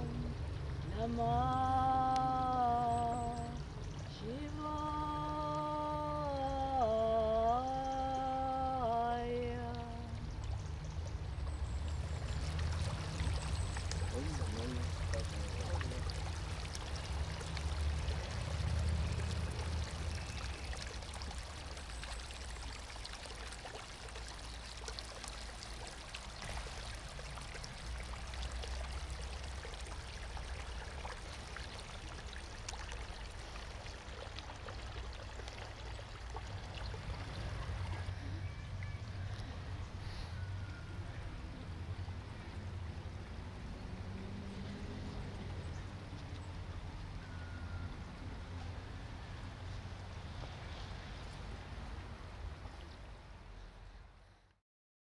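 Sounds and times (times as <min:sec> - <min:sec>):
water trickling: 0:00.0 - 0:53.6.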